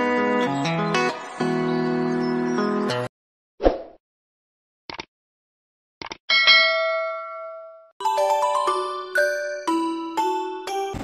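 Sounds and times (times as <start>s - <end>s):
bright bell ding: 6.3s - 7.9s
chiming bell melody: 6.4s - 10.9s.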